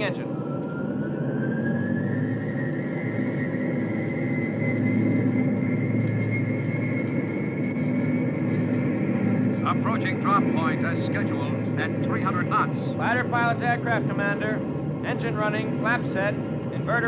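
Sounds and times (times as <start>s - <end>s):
jet engine starting whine: 0.0s - 17.0s
low drone of bomber engines: 0.0s - 17.0s.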